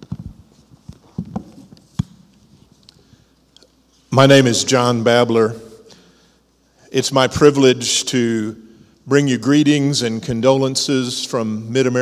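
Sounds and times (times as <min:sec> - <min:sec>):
microphone handling thumps: 0:00.0 - 0:02.3.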